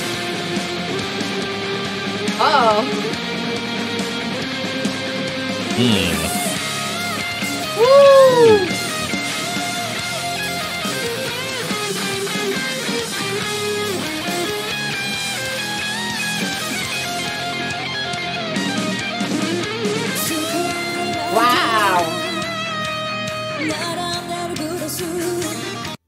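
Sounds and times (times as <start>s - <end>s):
hard rock band playing: 0.0s - 23.7s
electric guitar: 0.0s - 26.0s.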